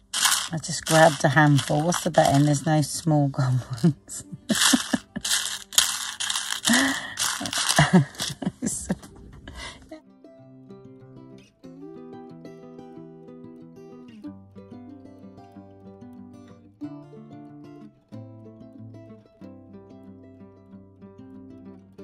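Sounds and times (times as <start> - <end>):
sequins rattling in plastic box: 0.0 - 3.0, 4.5 - 8.9
background music: 0.0 - 22.0.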